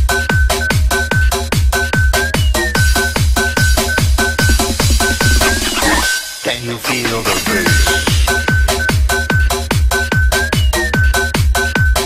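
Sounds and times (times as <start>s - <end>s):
electronic dance music: 4.4s - 6.2s.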